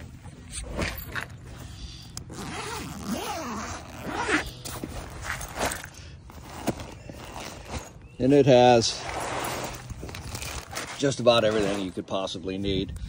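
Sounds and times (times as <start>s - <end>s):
bag handling clicks: 0.4s - 8.1s
zipper pulled open: 0.5s - 8.0s, 8.9s - 12.0s.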